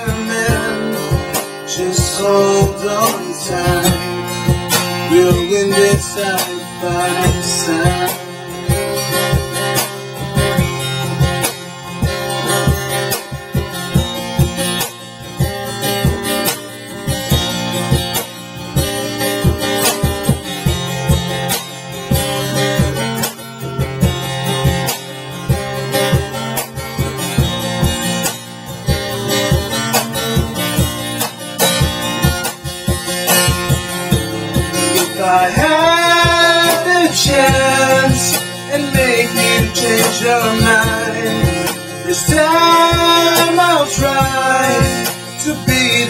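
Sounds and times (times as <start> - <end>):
man singing: 0.0 - 8.9, 34.6 - 46.0
acoustic guitar strumming: 0.0 - 46.0
cajon beating: 0.0 - 46.0.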